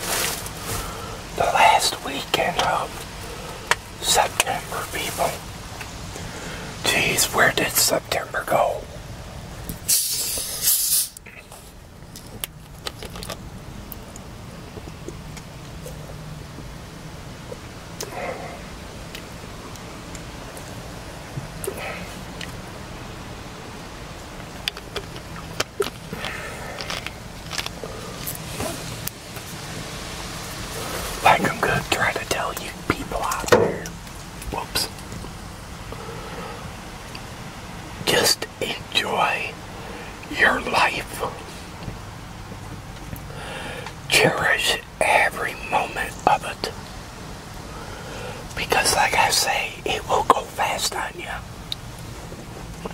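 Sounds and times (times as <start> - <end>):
mouth noises: 0.0 - 9.0, 9.7 - 12.4, 17.4 - 20.7, 24.3 - 29.5, 30.6 - 35.2, 38.0 - 41.8, 43.1 - 46.8
soda bottle opening hiss: 9.8 - 11.2
sipping from bottle: 9.9 - 11.3
close-up crackling: 11.2 - 16.7, 17.3 - 36.1.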